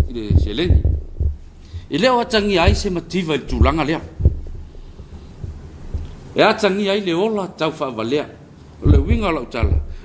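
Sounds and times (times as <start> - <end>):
person speaking: 0.0 - 4.4, 8.8 - 9.9
low thumps: 0.0 - 6.4, 8.8 - 10.0.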